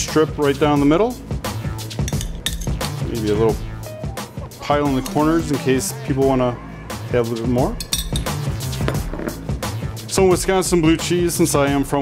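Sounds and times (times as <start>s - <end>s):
background music: 0.0s - 12.0s
metal spoon clinking on ceramic dish: 2.0s - 2.8s, 7.8s - 8.4s.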